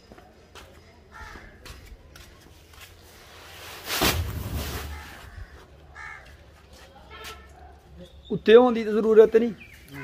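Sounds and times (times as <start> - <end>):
faint background noise: 0.0 - 10.0.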